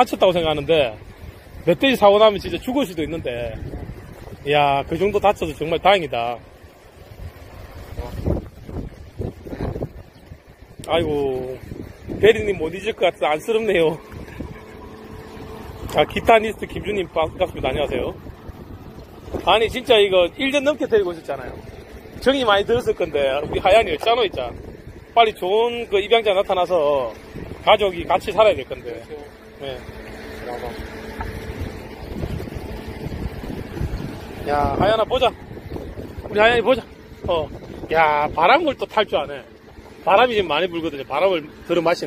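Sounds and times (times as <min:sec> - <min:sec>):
faint steady hum: 0:00.0 - 0:42.0
wind buffeting microphone: 0:00.0 - 0:42.0.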